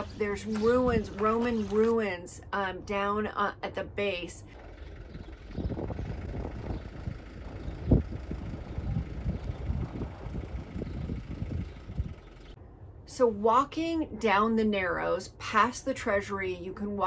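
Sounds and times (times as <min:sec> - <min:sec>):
wind buffeting microphone: 0:00.0 - 0:01.8, 0:04.4 - 0:12.6.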